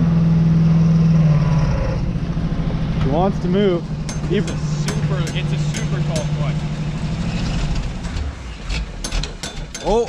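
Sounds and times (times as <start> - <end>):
engine knocks and clatter: 0.0 - 10.0
pickup engine lugging and stalling: 2.8 - 10.0.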